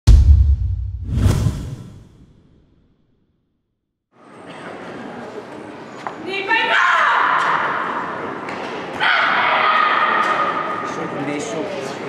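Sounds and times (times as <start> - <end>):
whoosh with deep low rumble: 0.1 - 2.2.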